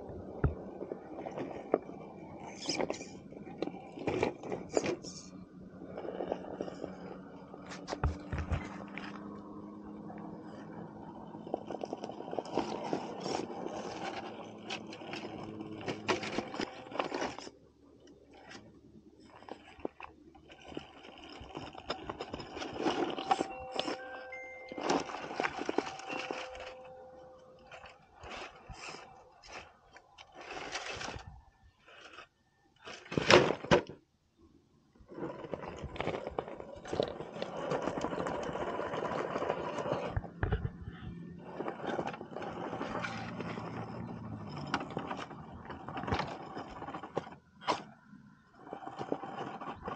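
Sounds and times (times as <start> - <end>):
electric motor whining: 19.3 - 31.2.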